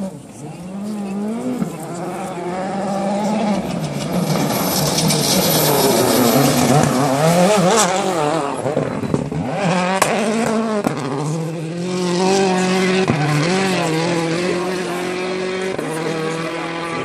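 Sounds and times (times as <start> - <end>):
rally car engine at high revs: 0.0 - 17.0.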